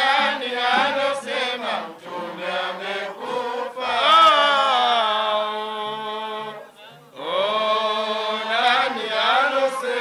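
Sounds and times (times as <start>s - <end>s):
men chanting into microphones: 0.0s - 10.0s.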